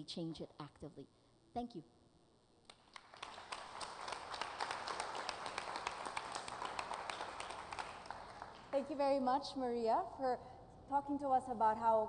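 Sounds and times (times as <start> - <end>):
audience applauding: 2.7 - 8.8.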